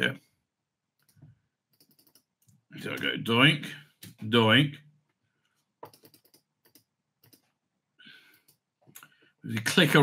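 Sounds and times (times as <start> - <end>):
computer keyboard typing: 1.0 - 2.5, 5.8 - 7.5.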